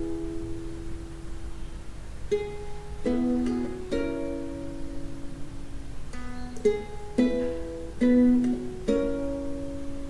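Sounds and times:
ukulele plucked strokes: 2.2 - 10.0.

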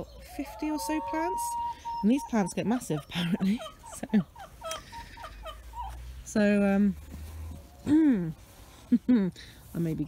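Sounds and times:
hens clucking: 0.0 - 6.7.

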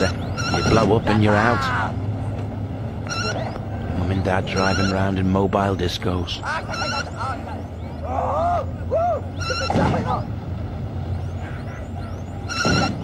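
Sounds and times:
beeping tone: 0.0 - 1.2, 3.0 - 5.4, 6.5 - 8.0, 9.3 - 10.0, 11.1 - 13.0
excited voices: 0.7 - 2.1, 3.2 - 10.4.

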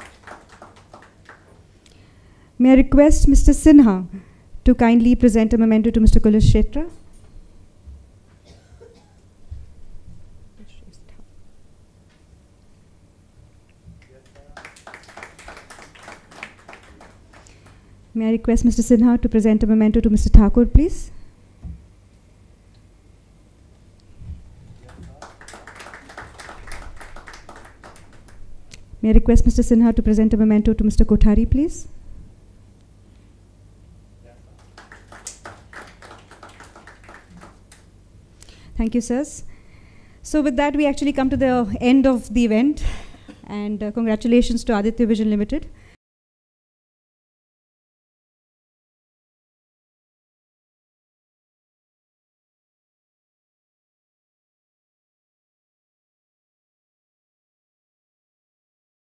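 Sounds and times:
low room rumble: 0.0 - 46.0.

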